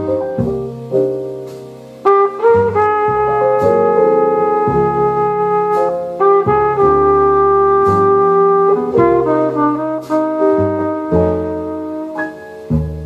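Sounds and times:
bass line: 0.0s - 13.0s
horn playing held melody notes: 2.0s - 12.7s.

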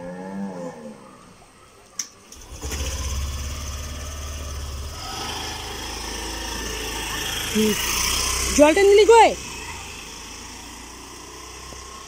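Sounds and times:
scooter engine idling: 2.4s - 12.0s.

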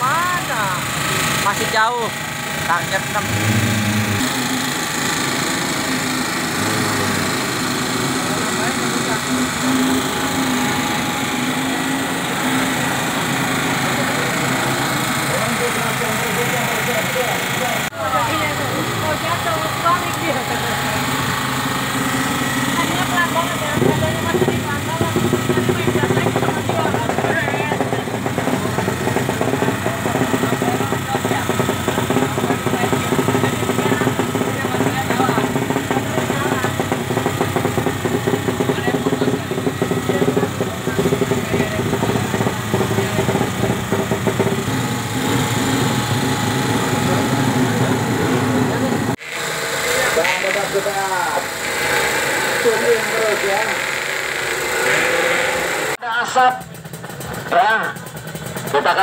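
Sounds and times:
voices: 0.0s - 49.2s, 49.8s - 54.0s, 57.4s - 59.0s
deep engine rumble: 0.0s - 56.0s
petrol generator running: 0.0s - 59.0s.

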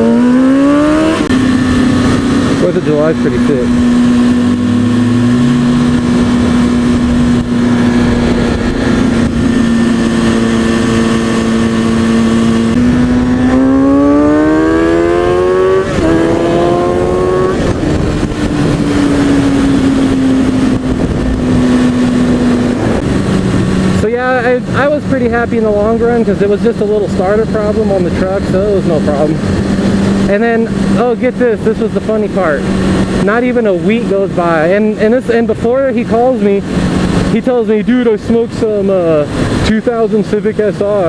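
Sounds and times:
wind noise rushing: 0.0s - 40.1s
motorcycle engine accelerating: 0.0s - 41.0s.

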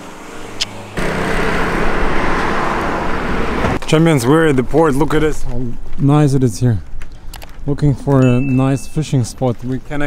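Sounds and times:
cars driving past: 0.0s - 3.8s.

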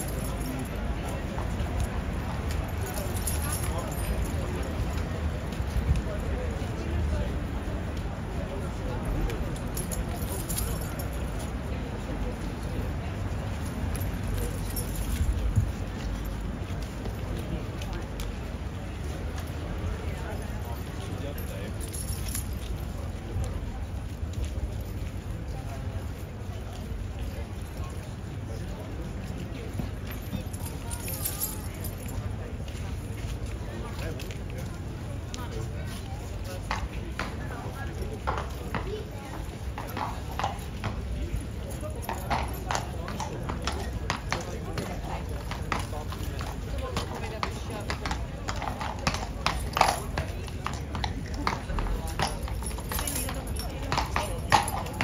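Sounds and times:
horse bridle jingling: 0.0s - 6.7s, 8.9s - 11.7s, 12.4s - 28.3s, 29.0s - 34.7s, 35.9s - 55.0s
hooves clip-clopping on stone: 0.0s - 55.0s.

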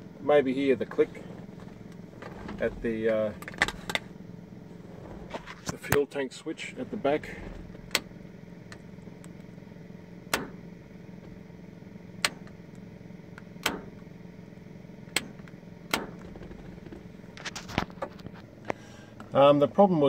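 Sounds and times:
steady low hum: 0.0s - 20.0s
tank selector switch clicks: 7.8s - 8.1s, 10.3s - 11.4s, 12.2s - 14.0s, 15.1s - 16.4s.

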